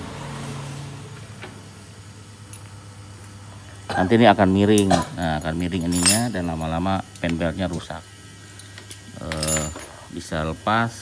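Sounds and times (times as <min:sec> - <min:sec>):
steady low hum: 0:00.7 - 0:11.0.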